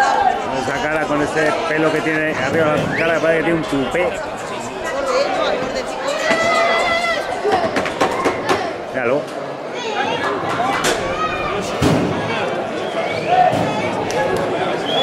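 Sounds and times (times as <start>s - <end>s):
crowd talking and calling out: 0.0s - 15.0s
sharp knocks and bangs: 11.8s - 12.3s.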